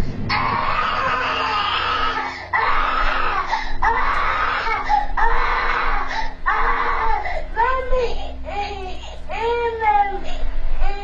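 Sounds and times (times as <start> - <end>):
toddler screaming and crying: 0.3 - 11.0.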